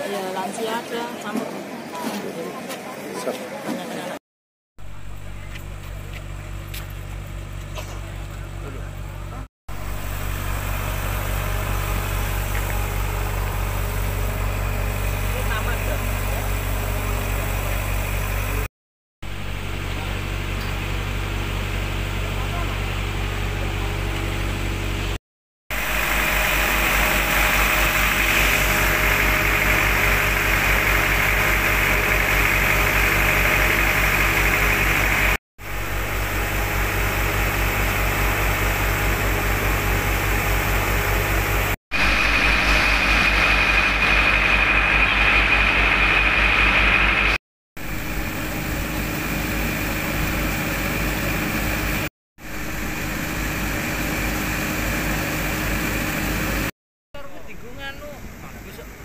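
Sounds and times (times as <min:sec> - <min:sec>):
water pump engine running: 0:04.8 - 0:59.0.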